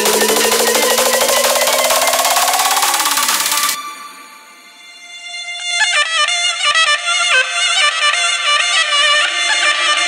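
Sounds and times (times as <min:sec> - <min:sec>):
fast drum roll: 0:00.0 - 0:03.8
held synth tones: 0:00.0 - 0:05.0
rising synth sweep: 0:00.0 - 0:05.0.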